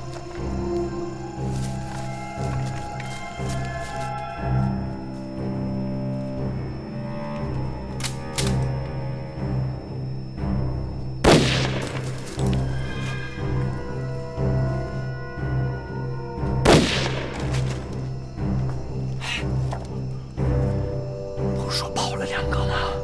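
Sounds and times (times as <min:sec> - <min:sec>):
music with low strings: 0:00.0 - 0:23.0
rifle shots with echo: 0:11.3 - 0:12.0.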